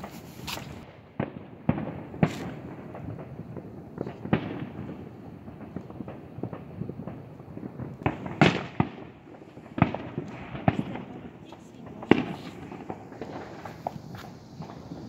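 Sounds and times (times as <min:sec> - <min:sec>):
fireworks bangs and pops: 0:00.0 - 0:15.0.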